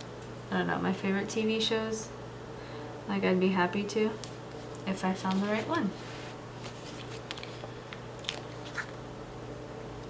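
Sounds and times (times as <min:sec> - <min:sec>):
low steady hum: 0:00.0 - 0:10.0
paper sticker sheet crackling: 0:06.6 - 0:09.0.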